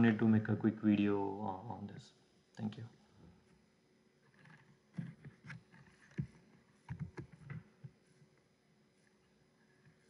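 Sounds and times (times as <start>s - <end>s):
faint knocks and clicks: 4.3s - 8.0s.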